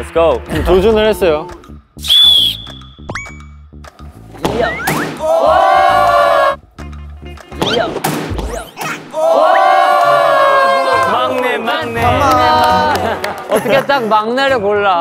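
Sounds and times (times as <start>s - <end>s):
background music: 0.0s - 15.0s
group cries: 5.2s - 6.6s, 9.1s - 13.5s.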